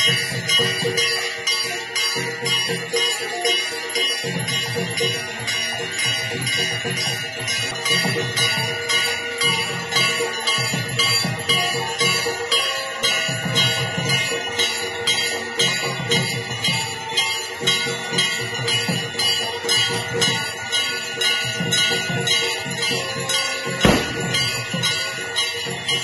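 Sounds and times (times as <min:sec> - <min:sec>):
temple bells ringing rapidly: 0:00.0 - 0:26.0
low beat: 0:23.8 - 0:25.0.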